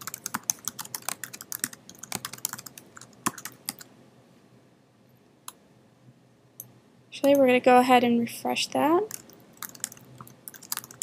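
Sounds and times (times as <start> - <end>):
typing on computer keyboard: 0.0 - 3.9, 9.1 - 11.0.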